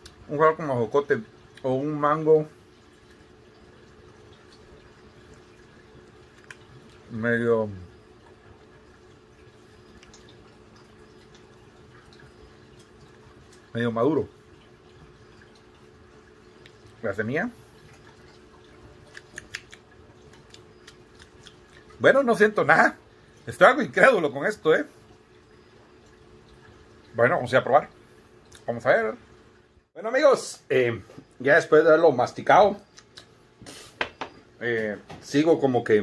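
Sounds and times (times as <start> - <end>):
aquarium filter hum: 0.0 - 36.0
running water: 0.0 - 36.0.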